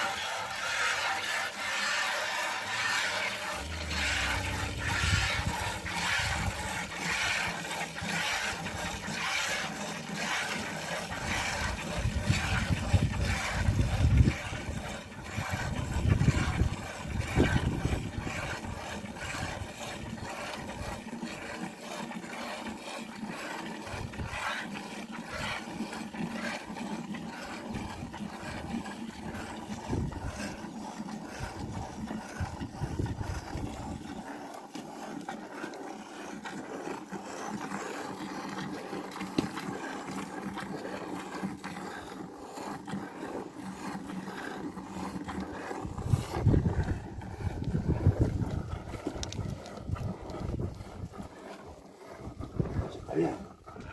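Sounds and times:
milk squirting into plastic bucket: 0.0s - 53.9s
low rumbling: 3.3s - 6.8s.

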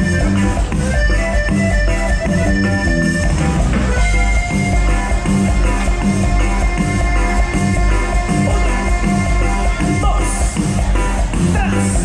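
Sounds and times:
accordion tones: 0.0s - 12.0s
bajo sexto and bass: 0.0s - 12.0s
drums beat: 0.0s - 12.0s.

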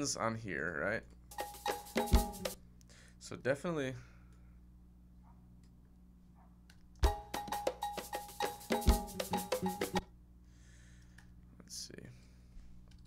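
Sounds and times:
quick percussion hits: 1.3s - 2.6s, 7.0s - 10.0s.

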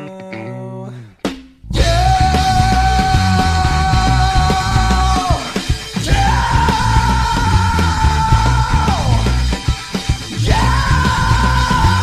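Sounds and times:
indie rock song: 0.0s - 12.0s.

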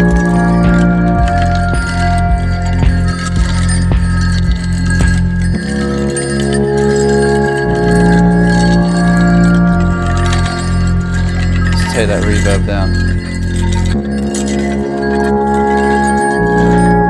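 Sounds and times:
steady synth bass: 0.0s - 17.0s
synth chords: 0.0s - 17.0s.

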